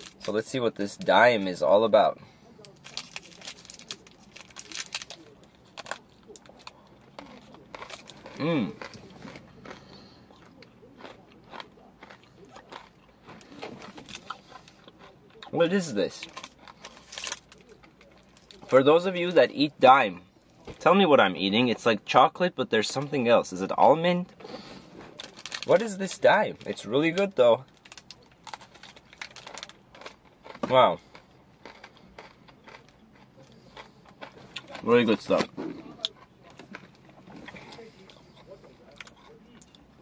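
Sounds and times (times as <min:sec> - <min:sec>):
crunchy chewing: 0:00.0 - 0:00.4, 0:02.6 - 0:19.3, 0:24.4 - 0:40.0
wrapper crinkling: 0:02.7 - 0:08.2, 0:16.2 - 0:18.6, 0:25.1 - 0:25.8, 0:27.7 - 0:29.8.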